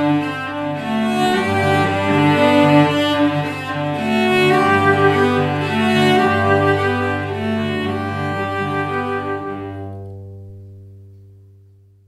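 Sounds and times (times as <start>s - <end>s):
cello notes ringing: 0.0s - 11.8s.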